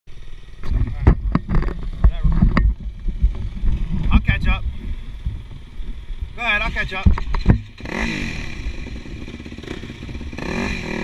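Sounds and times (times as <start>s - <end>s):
dirt bike engines idling: 0.1s - 11.0s.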